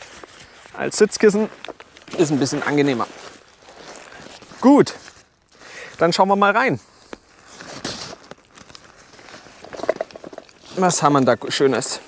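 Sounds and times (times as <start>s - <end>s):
backpack fabric rustling: 0.0s - 5.4s, 6.8s - 11.2s.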